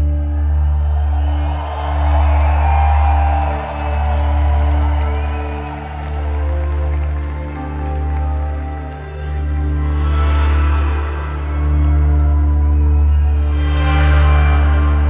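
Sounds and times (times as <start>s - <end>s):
crowd cheering and whooping: 0.0s - 15.0s
deep bass drone: 0.0s - 15.0s
slow live concert music: 0.0s - 15.0s.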